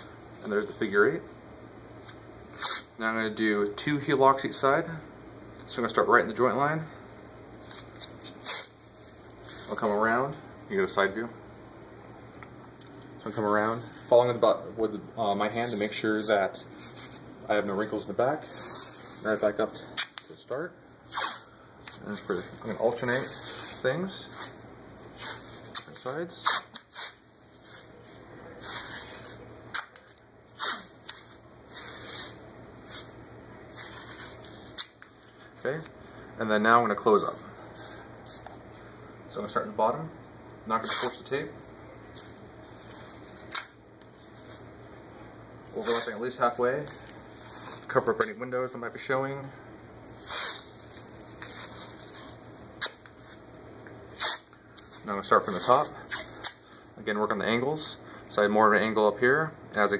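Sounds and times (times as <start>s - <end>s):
adhesive tape peeling: 2.0s - 2.9s, 7.5s - 9.8s, 21.1s - 22.0s, 23.1s - 27.9s, 28.6s - 35.2s, 40.8s - 41.2s, 42.1s - 44.6s, 45.8s - 46.2s, 46.8s - 48.3s, 50.1s - 56.7s
hands rubbing tape: 2.0s - 2.9s, 7.2s - 9.8s, 15.3s - 17.2s, 18.4s - 35.9s, 40.8s - 41.2s, 45.8s - 46.2s, 46.8s - 48.3s, 50.1s - 56.7s.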